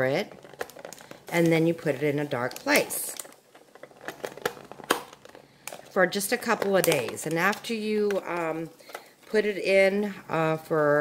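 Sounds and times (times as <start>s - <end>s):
plastic cover clicks and crinkles: 0.1s - 9.6s.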